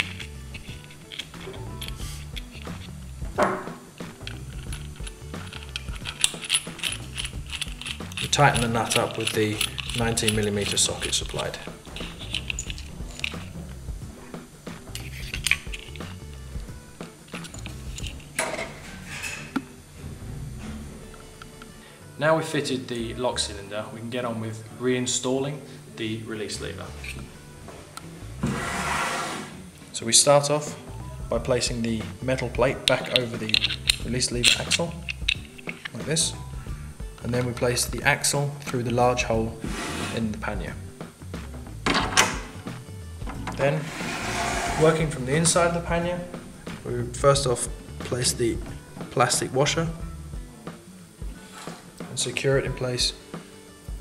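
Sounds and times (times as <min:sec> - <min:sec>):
small metal clicks and clinks: 0:00.0 - 0:02.9, 0:04.0 - 0:13.6, 0:14.9 - 0:16.2, 0:17.3 - 0:18.4, 0:32.8 - 0:36.0
rustling handling noise: 0:00.0 - 0:03.2, 0:03.8 - 0:13.9, 0:14.8 - 0:19.6, 0:32.3 - 0:36.5
background music: 0:00.0 - 0:54.0.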